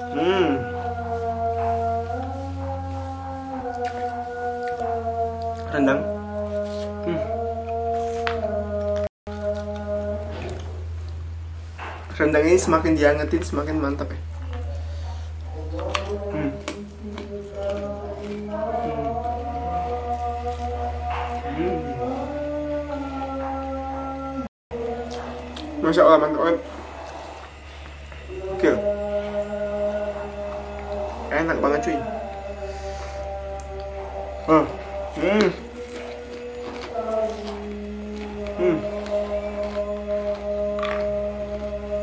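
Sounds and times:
low hum: 0.0 - 42.0.

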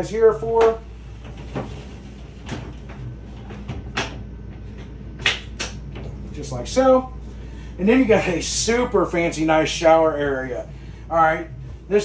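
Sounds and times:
shower door sliding rumble: 0.6 - 5.0.

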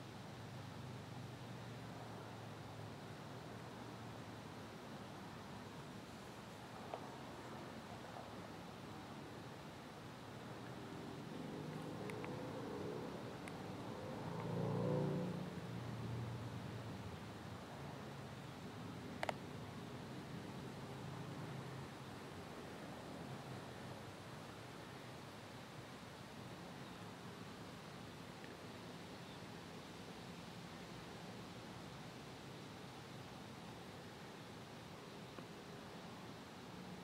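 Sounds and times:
vehicle passing by: 11.4 - 16.5.

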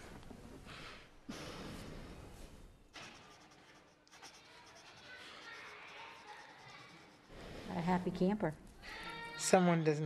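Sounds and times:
faint rustling and scratching: 1.6 - 8.9.

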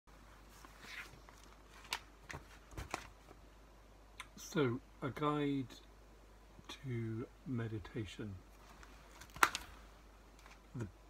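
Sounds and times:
sharp paper crackle: 8.8 - 9.8.

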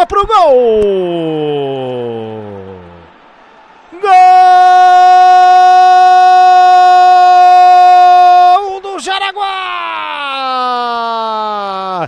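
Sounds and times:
commentator shouting goal: 3.9 - 12.0.

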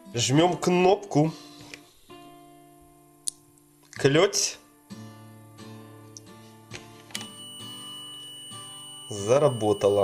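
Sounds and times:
acoustic guitar music: 0.0 - 10.0
multimeter continuity beep: 7.2 - 10.0.

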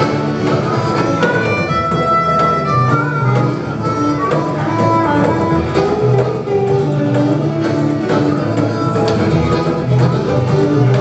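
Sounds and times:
harmonica high note: 0.0 - 11.0
strummed acoustic guitars: 0.0 - 11.0.

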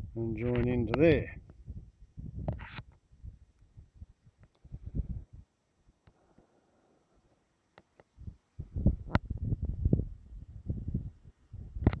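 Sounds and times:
muffled thumps and rubbing on camera: 0.4 - 3.4, 7.8 - 10.0.

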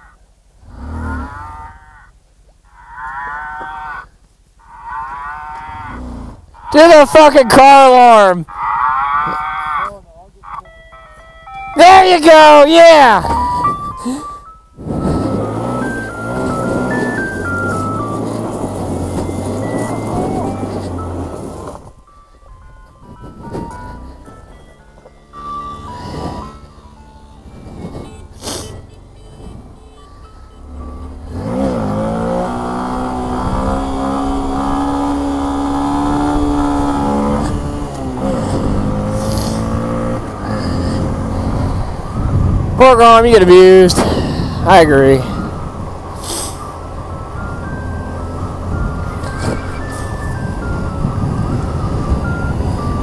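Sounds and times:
vehicle engine running: 0.0 - 53.0
wavering alarm tone: 1.1 - 43.8, 44.6 - 53.0
stepping beeping tones: 6.6 - 43.9, 44.7 - 53.0.

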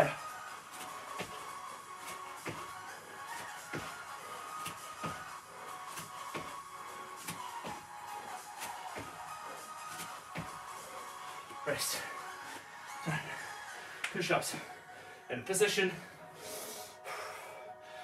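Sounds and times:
background music: 0.0 - 18.0
jump landings on exercise mat: 0.8 - 1.4, 2.1 - 2.7, 6.0 - 6.6, 7.2 - 7.9, 9.9 - 10.6.

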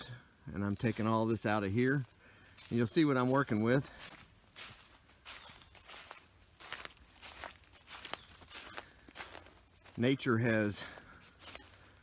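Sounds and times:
footsteps on fallen leaves: 0.7 - 12.0.

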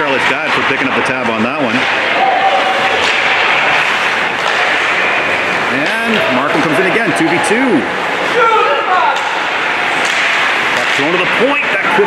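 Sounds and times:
ice hockey rink din: 0.0 - 12.0.

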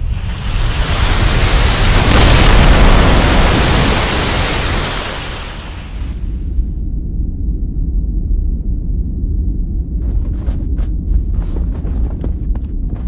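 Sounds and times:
steady deep bass: 6.5 - 13.0.

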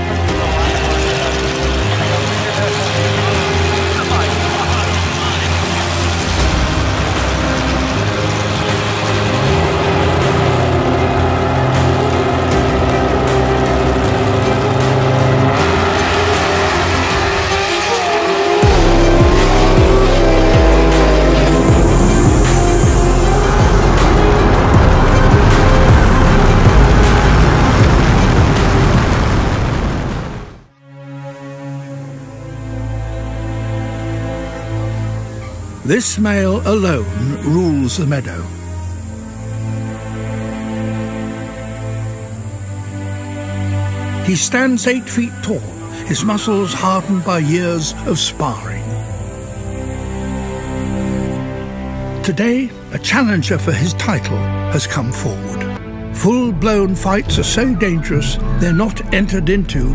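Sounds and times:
drag car engines running: 0.0 - 29.9, 32.9 - 53.7
background music: 0.0 - 59.9.

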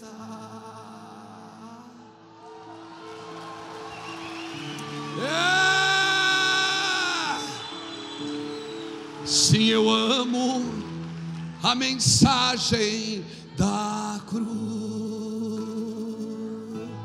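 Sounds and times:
man singing long held note: 0.0 - 2.2, 5.1 - 7.9, 9.2 - 11.0.

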